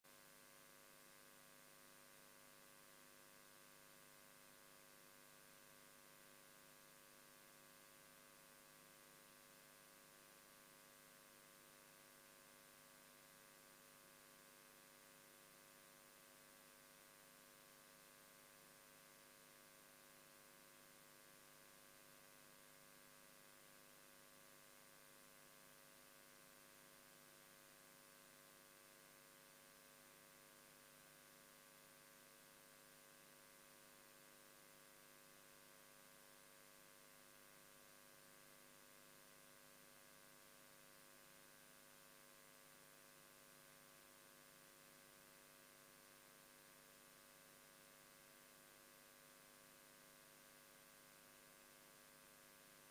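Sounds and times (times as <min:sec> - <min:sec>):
faint electrical hum: 0:00.1 - 0:52.9.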